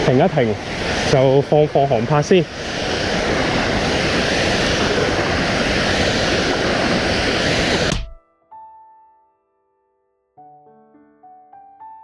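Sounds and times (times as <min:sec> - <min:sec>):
water rushing over dam spillway: 0:00.0 - 0:07.9.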